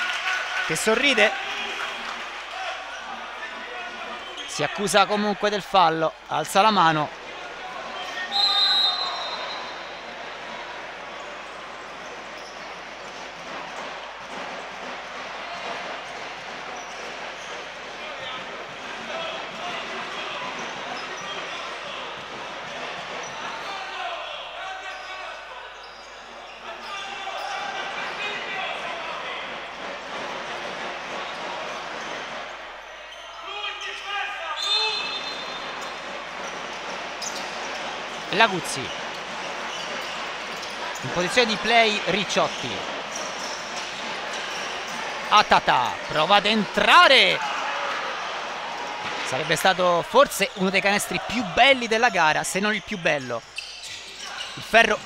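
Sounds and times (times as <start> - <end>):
voices echoing in a hall: 0.0 - 55.0
short high whistle blast: 8.3 - 9.9.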